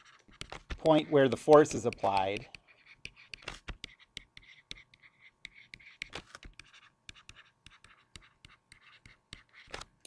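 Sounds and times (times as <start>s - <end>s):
stylus clicking and scratching: 0.0s - 10.0s.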